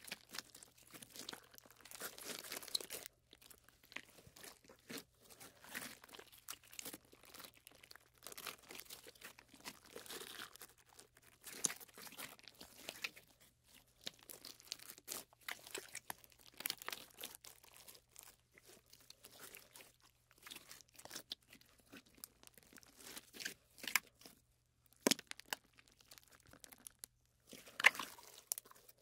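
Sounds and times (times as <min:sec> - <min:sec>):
slime crackling and popping: 0:00.0 - 0:29.0.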